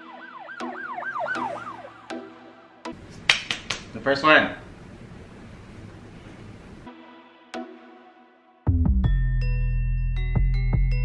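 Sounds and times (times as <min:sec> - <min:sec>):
whooping siren-like tone: 0:00.0 - 0:02.8.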